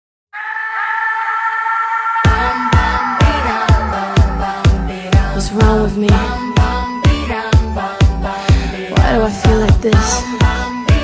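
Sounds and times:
held synthesizer chord: 0:02.2 - 0:07.5.

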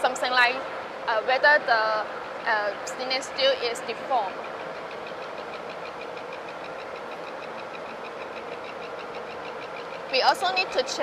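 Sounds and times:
fast regular ticking: 0:02.2 - 0:11.0.

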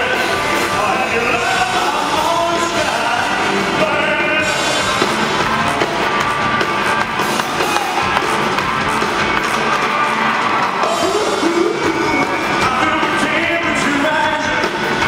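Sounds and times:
person singing: 0:00.0 - 0:06.3, 0:10.8 - 0:15.0
rock and roll band playing loudly: 0:00.0 - 0:15.0.

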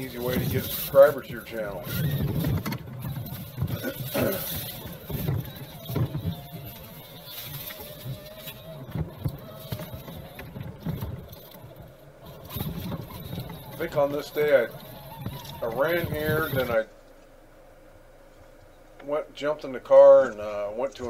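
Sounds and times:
electric motor and gear whine: 0:00.0 - 0:16.9.

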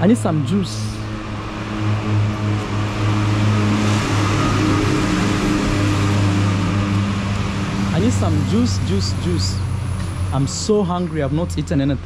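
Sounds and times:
rushing noise: 0:00.0 - 0:11.4.

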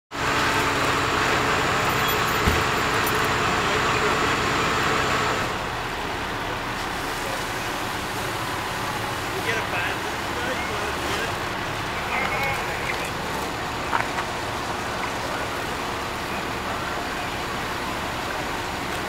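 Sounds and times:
vehicle engine running: 0:00.1 - 0:19.0
indistinct voices: 0:01.2 - 0:19.0.

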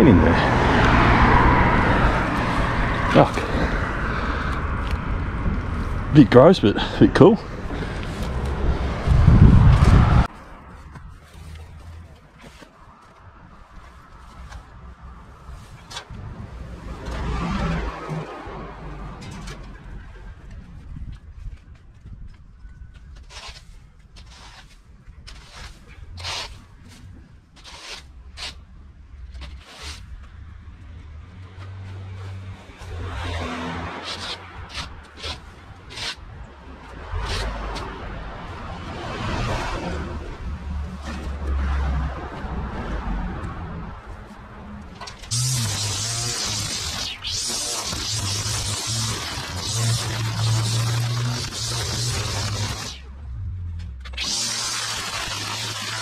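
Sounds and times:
steady low rumble: 0:00.0 - 0:12.2, 0:35.5 - 0:56.0
garden tool scraping: 0:23.2 - 0:28.6, 0:29.3 - 0:30.1, 0:32.9 - 0:36.2, 0:45.3 - 0:53.1
loud burst of noise: 0:45.3 - 0:53.1, 0:54.1 - 0:56.0.

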